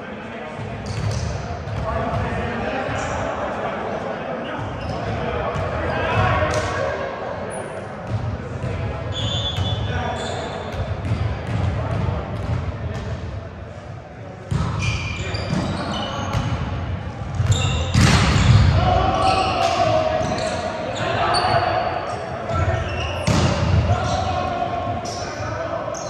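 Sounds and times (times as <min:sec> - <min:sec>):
players talking and calling out: 0:00.0 - 0:26.0.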